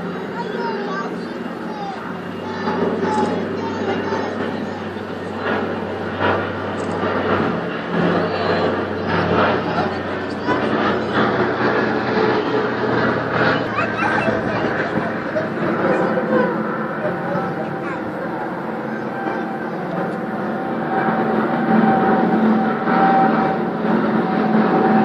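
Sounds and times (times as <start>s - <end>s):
people talking: 0.0s - 20.6s
propeller aircraft drone: 0.0s - 25.0s.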